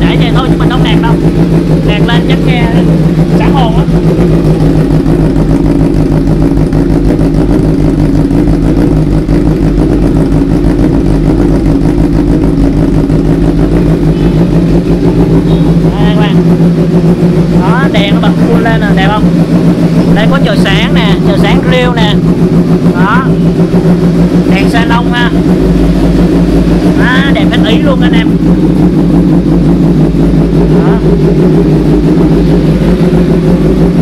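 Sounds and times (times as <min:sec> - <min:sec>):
motorcycle engine idling: 0:00.0 - 0:34.0.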